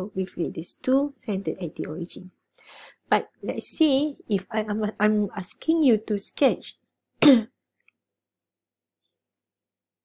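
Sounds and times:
woman clearing her throat: 0:07.2 - 0:07.6.

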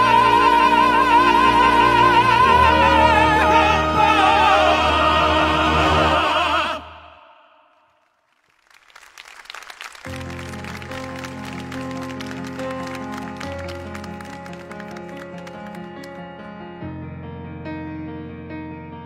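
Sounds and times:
male operatic voices singing: 0:00.0 - 0:07.6
applause: 0:08.0 - 0:16.3.

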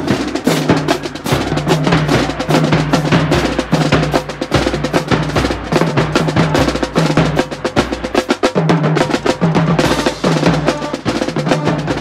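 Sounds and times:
marching band low notes: 0:00.0 - 0:12.0
marching snare drum rolls: 0:00.0 - 0:12.0.

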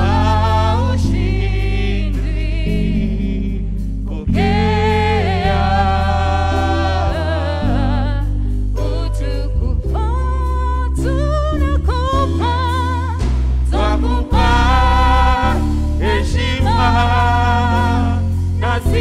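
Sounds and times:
group singing gospel song: 0:00.0 - 0:09.7, 0:12.4 - 0:19.0
instrumental backing with bass: 0:00.0 - 0:19.0.

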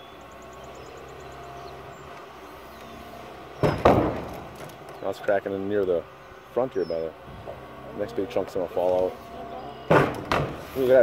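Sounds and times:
excavator diesel engine running: 0:00.0 - 0:11.0.

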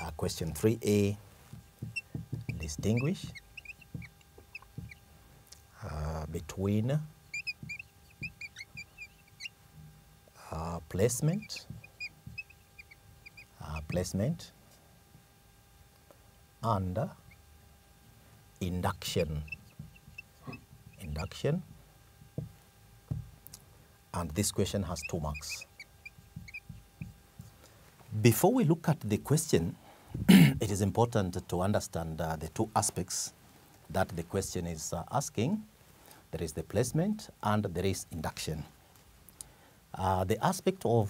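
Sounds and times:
soft low knocks: 0:01.5 - 0:05.1, 0:07.2 - 0:10.0, 0:18.9 - 0:23.4, 0:25.0 - 0:27.5
marker squeaking on whiteboard: 0:01.8 - 0:05.1, 0:07.2 - 0:09.6, 0:11.2 - 0:14.1, 0:18.9 - 0:21.4, 0:24.8 - 0:27.2.

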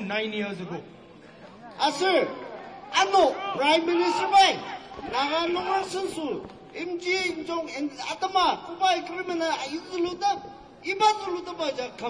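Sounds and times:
man speaking: 0:01.8 - 0:12.0.

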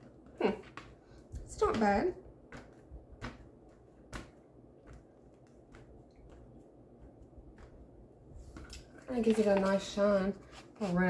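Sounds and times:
paper rustling: 0:08.5 - 0:11.0.

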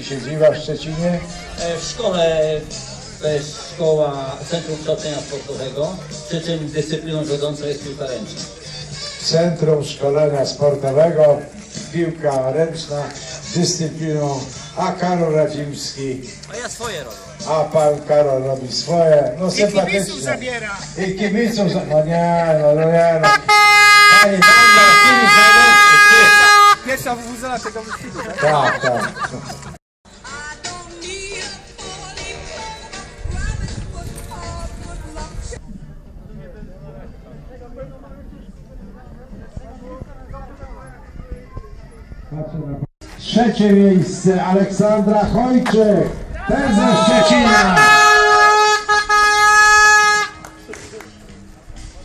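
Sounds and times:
voices: 0:00.0 - 0:29.7, 0:35.1 - 0:52.0
loud horn blast: 0:23.2 - 0:26.9, 0:47.2 - 0:50.5.

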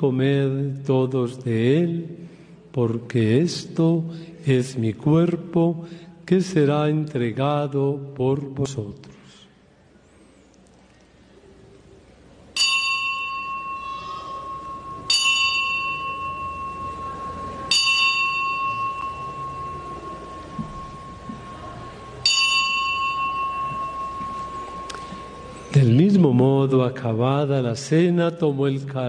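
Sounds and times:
altar bell ringing: 0:12.5 - 0:27.2.

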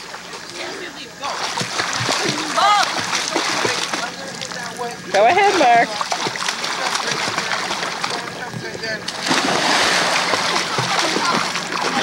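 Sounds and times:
pool water splashing: 0:00.0 - 0:12.0.

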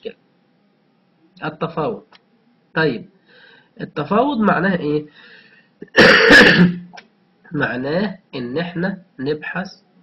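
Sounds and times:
man clearing his throat: 0:05.8 - 0:06.9.

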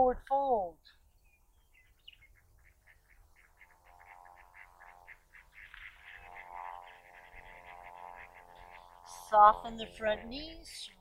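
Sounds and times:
faint steady hum: 0:00.0 - 0:11.0
frog chorus: 0:01.7 - 0:11.0.

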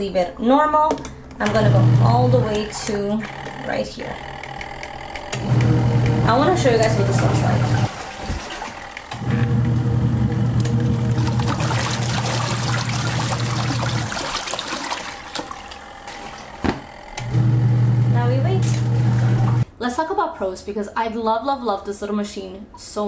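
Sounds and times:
washing machine motor humming: 0:01.4 - 0:19.6
water swishing: 0:06.3 - 0:09.9, 0:10.8 - 0:16.5.

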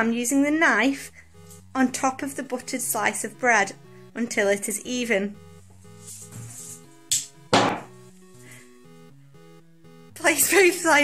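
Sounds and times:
background music: 0:00.0 - 0:11.0
objects hitting floor: 0:07.1 - 0:07.9.

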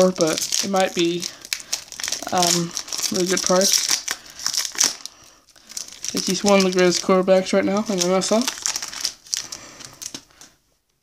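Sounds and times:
foil wrapper crinkling: 0:00.0 - 0:10.6.

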